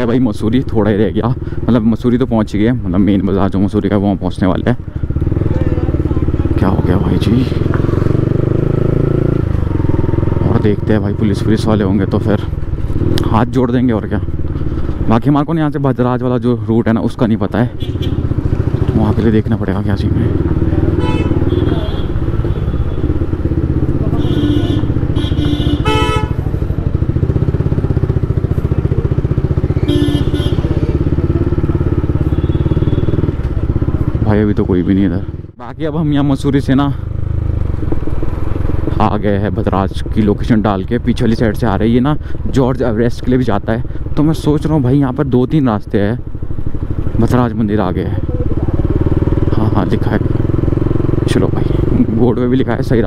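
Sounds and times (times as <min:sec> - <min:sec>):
motorcycle engine running: 0:00.0 - 0:53.0
short horn beeps: 0:24.2 - 0:26.4, 0:29.8 - 0:30.8.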